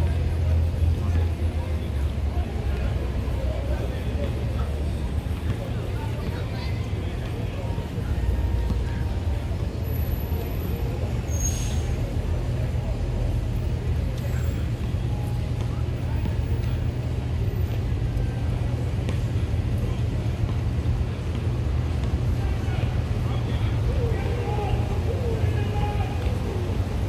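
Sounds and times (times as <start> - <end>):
city traffic rumble: 0.0 - 27.0.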